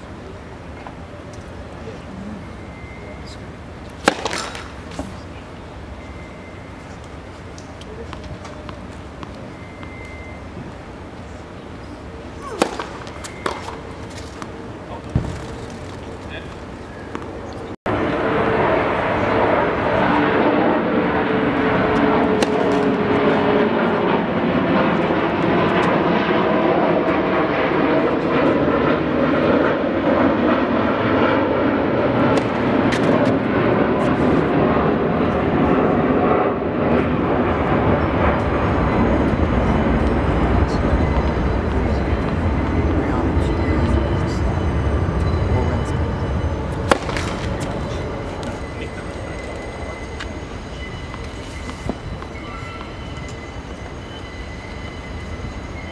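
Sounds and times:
aircraft passing overhead: 0.0 - 55.9
tennis balls being struck: 3.9 - 5.2, 12.4 - 14.5, 22.3 - 23.0, 46.8 - 47.7.

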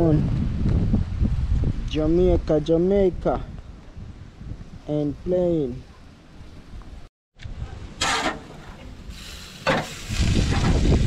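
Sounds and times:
short scraping bursts: 8.0 - 10.8
chicken sizzling on grill: 8.1 - 11.0.

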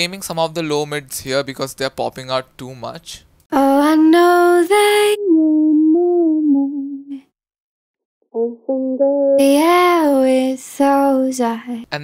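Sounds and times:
woman singing unaccompanied: 3.5 - 7.2, 8.4 - 11.8.

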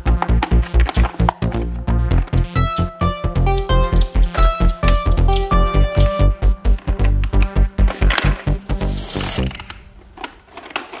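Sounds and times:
plastic toy parts clicking: 0.0 - 2.3, 9.2 - 11.0
background music: 0.0 - 10.0.

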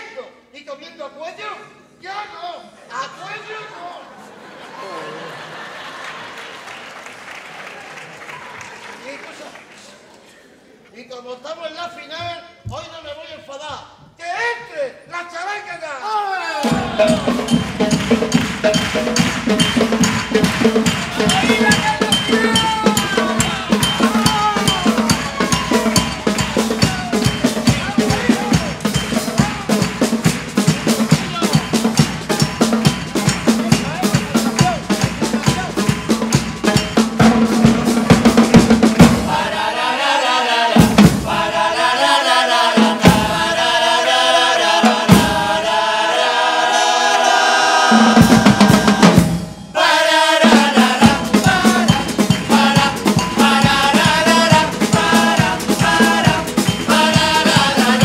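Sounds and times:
sharp drum hits: 16.6 - 39.5
fast busy drumming: 16.6 - 46.0, 47.8 - 58.0
brass band playing: 16.6 - 58.0.

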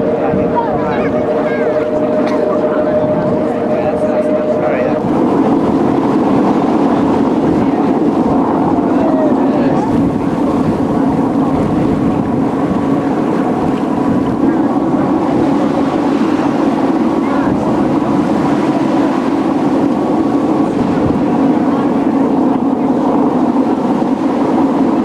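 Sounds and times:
bow wave rushing along hull: 0.0 - 25.0
diesel engine droning: 0.0 - 25.0
wind on microphone: 0.0 - 25.0.

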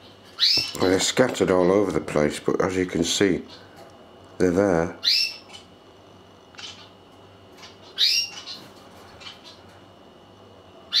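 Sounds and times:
faint bird chirps: 7.6 - 9.6.

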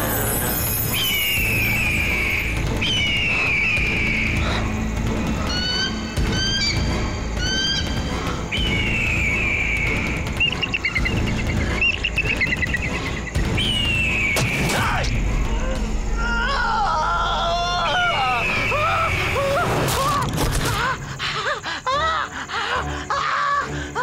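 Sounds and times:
high bird-like screeches: 0.0 - 4.6
chirps and warbling trill: 0.0 - 19.7.

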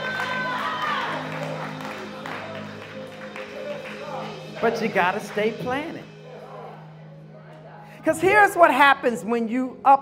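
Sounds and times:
keyboard playing low chords: 0.0 - 8.5
keyboard high held notes: 0.0 - 8.9.

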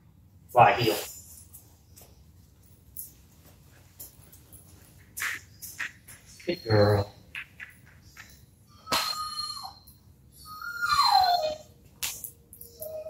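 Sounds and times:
dog whining: 8.2 - 11.8, 12.6 - 13.0.

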